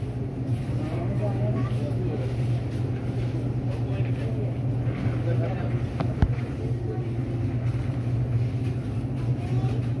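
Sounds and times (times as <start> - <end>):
faint indistinct voices: 0.0 - 10.0
steady low hum: 0.0 - 10.0.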